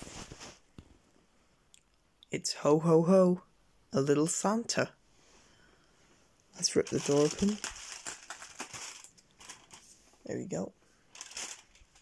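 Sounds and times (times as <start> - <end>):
cardboard tearing with crinkling: 6.8 - 9.8.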